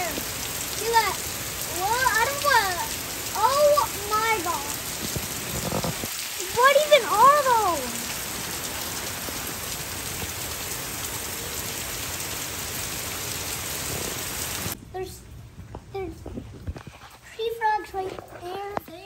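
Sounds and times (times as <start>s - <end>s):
heavy rain pouring: 0.0s - 14.8s.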